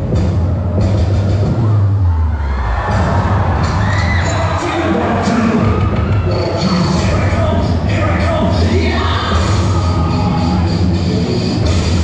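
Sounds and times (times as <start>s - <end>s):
crowd cheering and shouting: 1.4s - 12.0s
dance music with bass beat: 2.7s - 12.0s.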